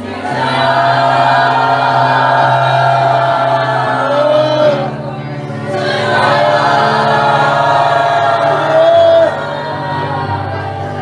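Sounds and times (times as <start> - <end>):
group singing worship song: 0.0 - 11.0.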